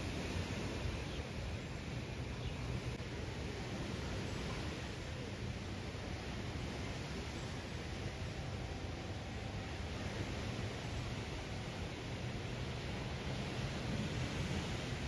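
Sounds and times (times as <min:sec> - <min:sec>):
wind on microphone: 0:00.0 - 0:15.0.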